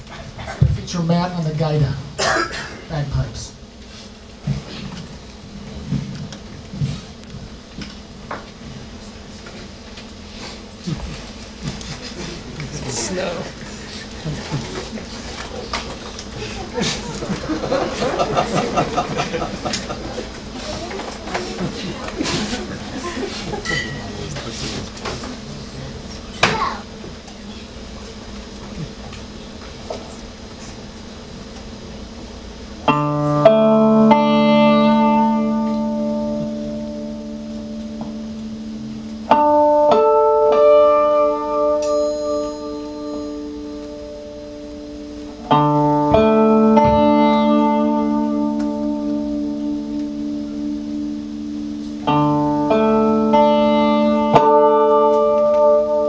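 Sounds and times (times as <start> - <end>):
plucked string instrument: 32.9 - 56.0.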